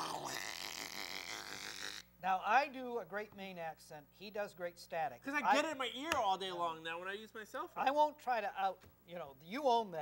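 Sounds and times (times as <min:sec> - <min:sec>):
man imitating phone static: 0:00.0 - 0:02.1.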